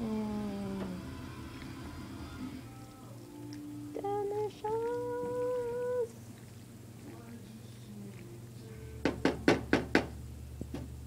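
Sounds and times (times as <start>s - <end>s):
utensil knocking on frying pan: 9.0s - 10.2s.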